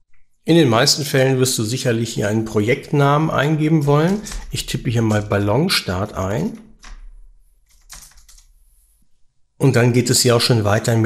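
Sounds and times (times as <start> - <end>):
computer keyboard typing: 3.7 - 8.6.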